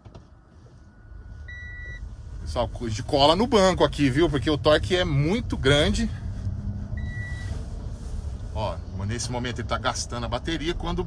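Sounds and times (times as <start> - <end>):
low rumble inside truck cab: 0.0 - 11.0
short high beep: 7.0 - 7.5.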